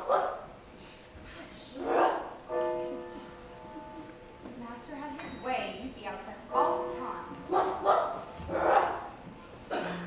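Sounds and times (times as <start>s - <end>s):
person imitating dog barks: 1.8s - 2.3s.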